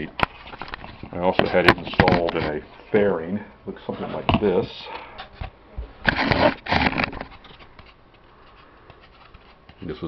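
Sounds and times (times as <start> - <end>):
styrofoam scraping and rustling: 6.0 - 7.8.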